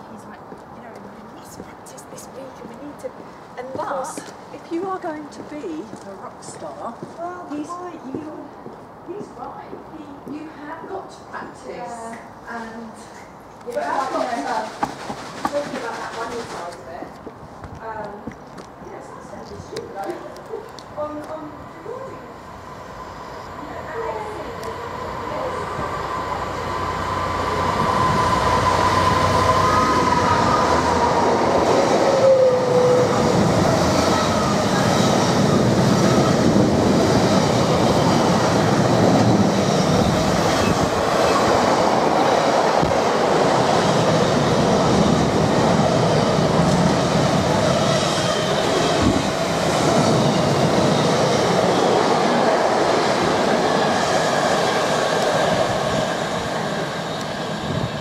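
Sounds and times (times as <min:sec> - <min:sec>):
diesel locomotive passing: 0:00.0 - 0:58.0
freight wagons running on rails: 0:13.7 - 0:20.0.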